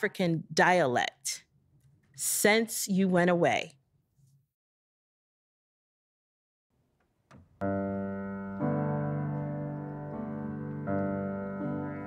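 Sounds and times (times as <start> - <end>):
grand piano chords: 7.6 - 12.0.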